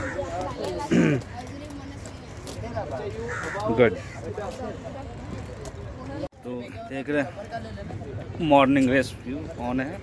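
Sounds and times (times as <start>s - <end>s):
people talking: 0.0s - 3.1s.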